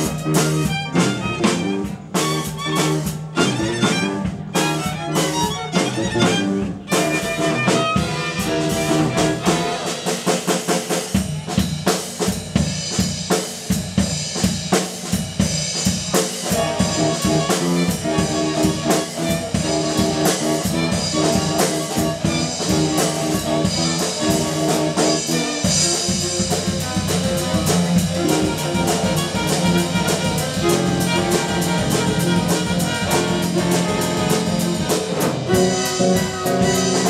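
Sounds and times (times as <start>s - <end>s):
busy drum kit: 0.0s - 37.0s
live band playing: 0.0s - 37.0s.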